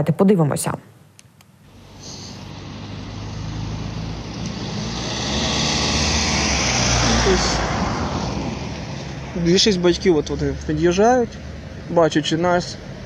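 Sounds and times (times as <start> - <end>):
car approaching: 1.7 - 13.0.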